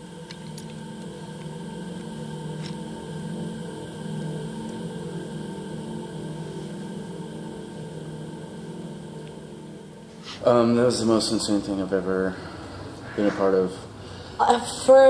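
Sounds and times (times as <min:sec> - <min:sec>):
ambient drone music: 0:00.0 - 0:15.0.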